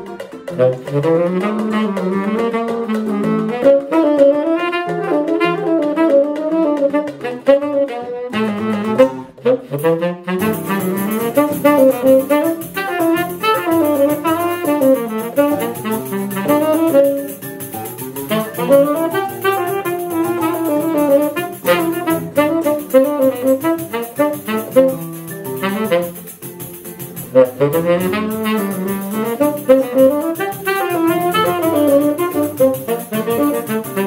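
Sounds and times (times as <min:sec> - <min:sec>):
pandeiro: 0:00.0 - 0:34.0
seven-string guitar: 0:00.0 - 0:34.0
tenor saxophone melody: 0:00.0 - 0:34.0.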